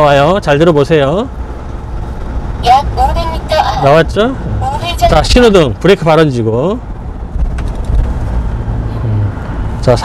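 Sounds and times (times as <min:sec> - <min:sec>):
truck engine and road noise: 0:00.0 - 0:10.0.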